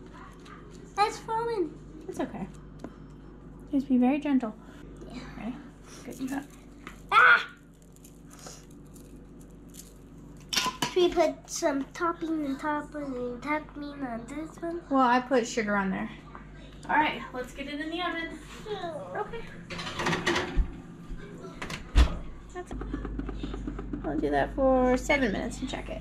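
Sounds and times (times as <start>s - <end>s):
steady low hum: 0.0s - 26.0s
oven door closing with thud: 21.6s - 22.3s.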